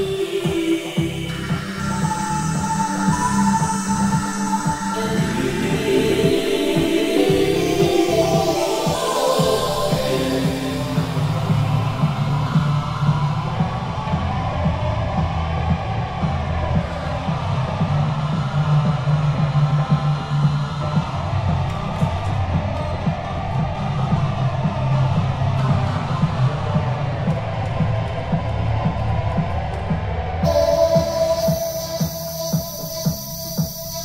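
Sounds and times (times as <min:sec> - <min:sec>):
electronic house music: 0:00.0 - 0:34.0
sustained bass notes: 0:00.0 - 0:34.0
synthesizer playing: 0:30.4 - 0:34.0.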